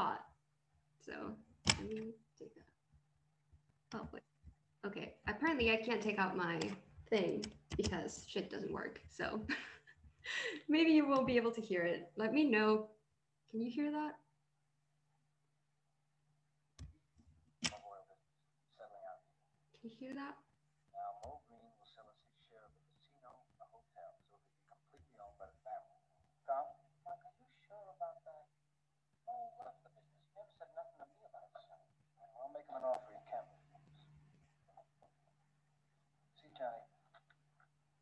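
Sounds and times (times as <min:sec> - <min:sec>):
person speaking: 0:00.0 - 0:00.2, 0:01.1 - 0:02.6, 0:03.9 - 0:04.2, 0:04.8 - 0:12.8
tinny film dialogue: 0:00.0 - 0:38.0.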